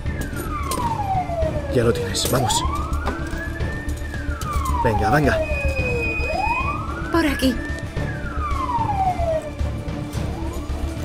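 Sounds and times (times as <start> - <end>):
ambulance siren wailing: 0.0 - 11.0.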